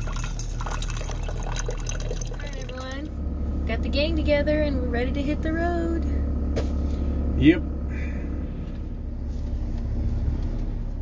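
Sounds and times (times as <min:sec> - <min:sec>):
faint steady hum: 0:00.0 - 0:11.0
van engine low rumble: 0:00.0 - 0:11.0.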